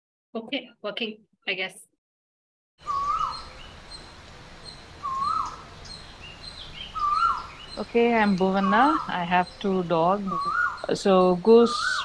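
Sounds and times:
bird whistling rising note: 2.8s - 7.7s
faint bird chirps: 2.8s - 12.0s.

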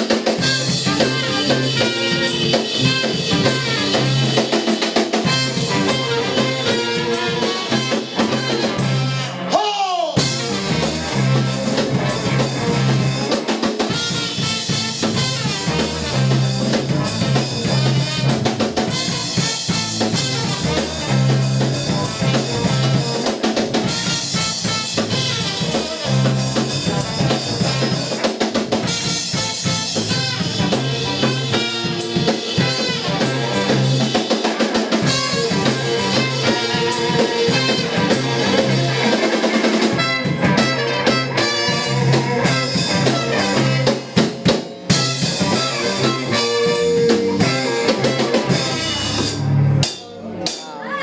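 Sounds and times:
electric bass: 0.0s - 9.6s, 10.2s - 50.4s
electric guitar: 0.0s - 9.6s, 10.2s - 51.0s
trumpet: 0.0s - 9.6s, 10.2s - 49.5s
drum kit beat: 0.0s - 50.8s.

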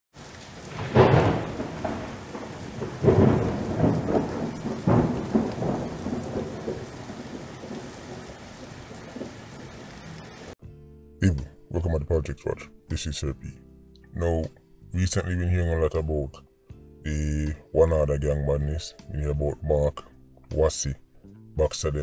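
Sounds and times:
rain hissing: 0.1s - 10.6s
thunder rumbles: 0.2s - 10.6s.

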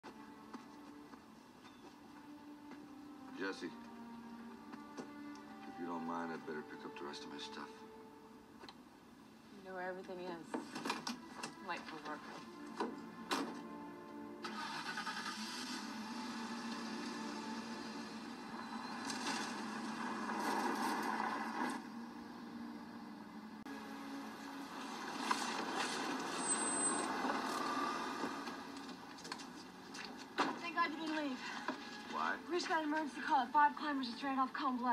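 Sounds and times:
background music: 0.0s - 34.9s.

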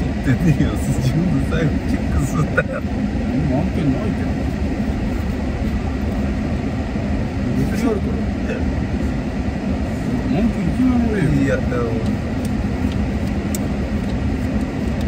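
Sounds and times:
car cabin rumble: 0.0s - 15.0s.

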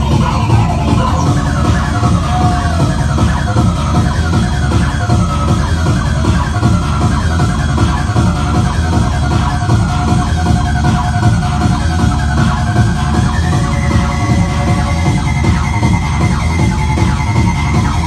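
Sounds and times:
acid techno music: 0.0s - 18.0s.

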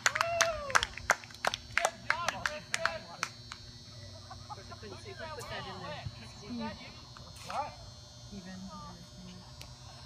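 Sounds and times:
high-pitched buzz: 1.2s - 10.0s.

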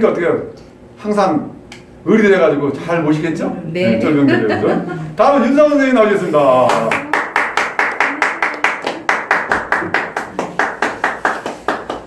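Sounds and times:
hands clapping: 6.6s - 12.0s.

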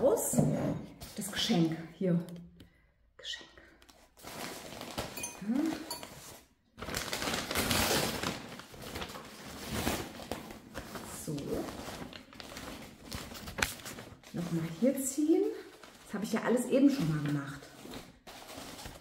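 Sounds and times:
paper wrapping rustling and crinkling: 3.9s - 19.0s.

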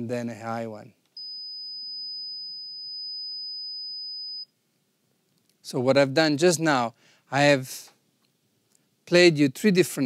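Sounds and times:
high-pitched sine test tone: 1.2s - 4.5s.

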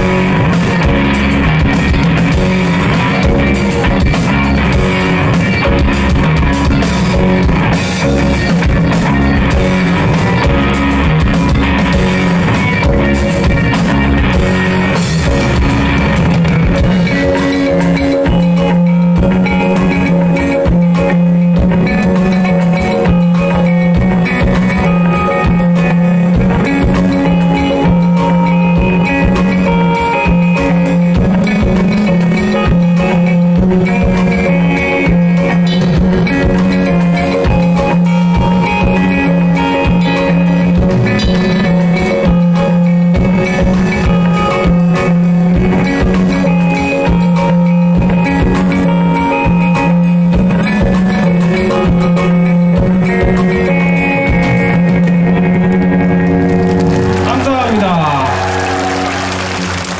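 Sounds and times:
bass line: 0.0s - 59.9s
drum kit: 0.0s - 59.9s
electric guitar: 0.0s - 59.9s
keyboard: 0.0s - 59.9s.

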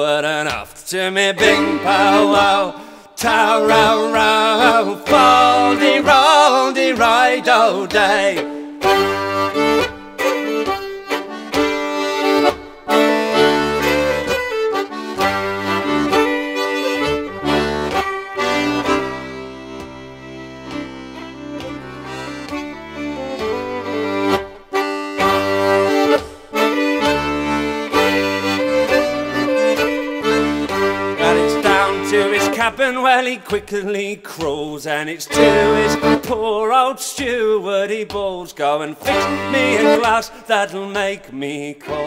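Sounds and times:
melodeon folk tune: 1.4s - 33.6s, 35.3s - 36.6s, 39.0s - 40.5s.

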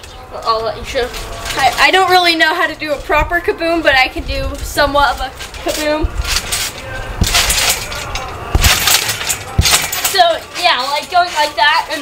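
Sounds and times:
springs rattling: 0.0s - 12.0s
trampoline mat thumping: 7.2s - 7.7s, 8.5s - 10.3s.

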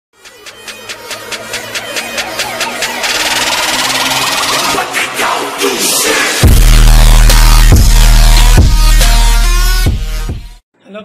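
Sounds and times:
electronic music beat: 0.2s - 10.6s.

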